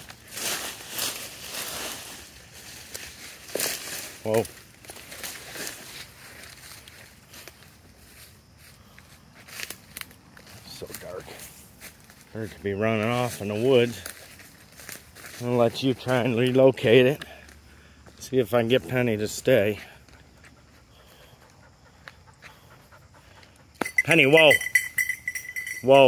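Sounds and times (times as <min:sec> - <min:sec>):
footsteps crunching through leaves: 0:00.0 - 0:18.9.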